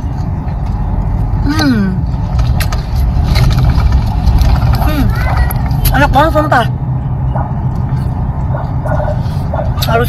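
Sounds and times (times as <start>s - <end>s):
low rumble inside car: 0.0s - 10.0s.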